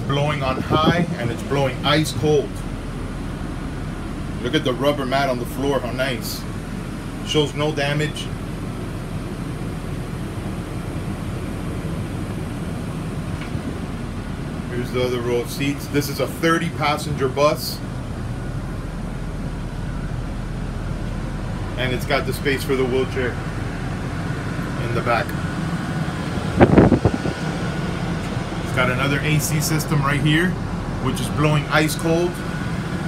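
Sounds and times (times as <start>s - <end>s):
air-conditioning blowers rushing: 0.0s - 33.0s
diesel engine idling: 0.0s - 33.0s
low hum: 0.0s - 33.0s.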